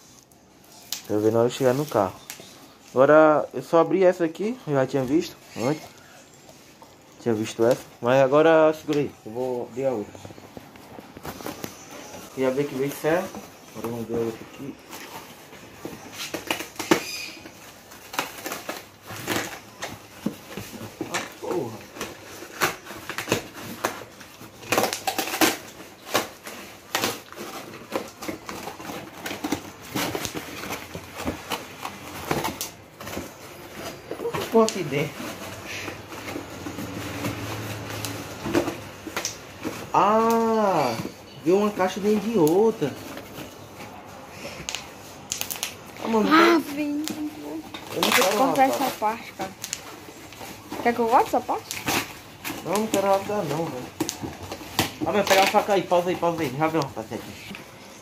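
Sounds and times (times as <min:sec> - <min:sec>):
cardboard box being unpacked: 0:00.0 - 0:58.0.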